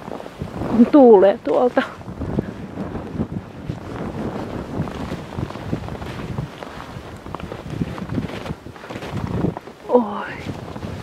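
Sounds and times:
gusty storm wind on microphone: 0.0 - 11.0.

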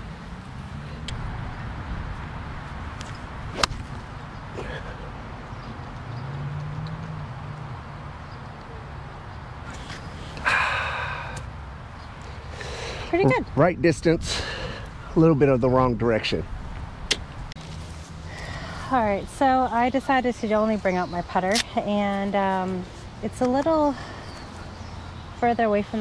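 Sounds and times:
golf club striking ball: 3.0 - 4.1.

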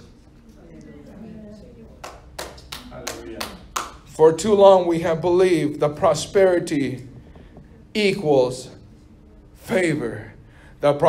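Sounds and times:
sharp hand claps: 2.0 - 4.1.

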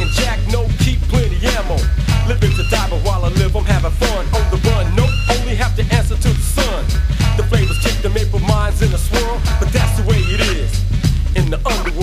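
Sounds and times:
drum hits: 0.0 - 12.0
heavy bass: 0.0 - 12.0
rapping over a beat: 0.0 - 12.0.

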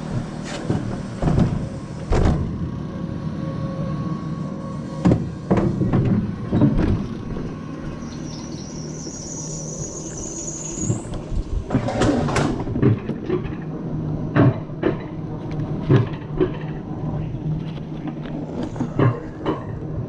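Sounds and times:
coaster sled rumbling on rail: 0.0 - 20.0
high whine rising in pitch: 7.6 - 11.6.

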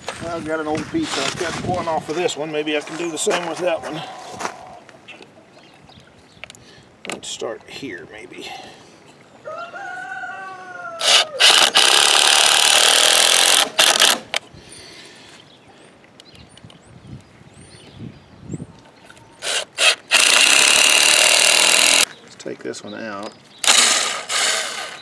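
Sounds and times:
cordless drill driving screws: 11.0 - 14.4, 19.4 - 22.1, 23.6 - 25.0.

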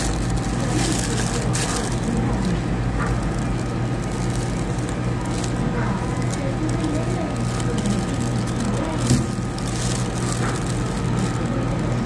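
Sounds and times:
faint far-off voices: 0.0 - 12.0
low background hum: 0.0 - 12.0.

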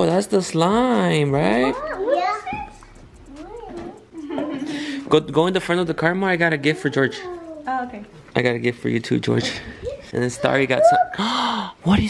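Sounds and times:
young child whining: 6.7 - 7.8, 9.8 - 11.4.

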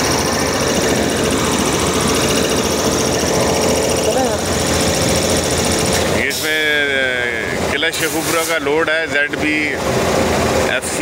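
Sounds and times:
high whine: 0.0 - 7.7
diesel locomotive engine idling: 0.0 - 11.0.

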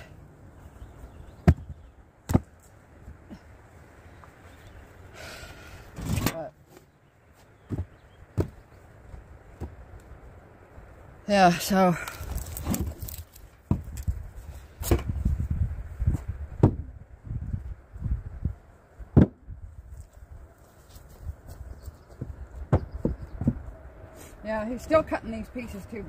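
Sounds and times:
firewood pieces knocking: 12.0 - 14.2.

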